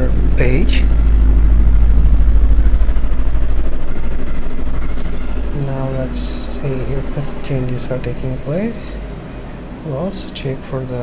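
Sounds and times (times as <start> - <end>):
deep low rumble: 0.0 - 9.9
faint higher hum tones: 0.0 - 11.0.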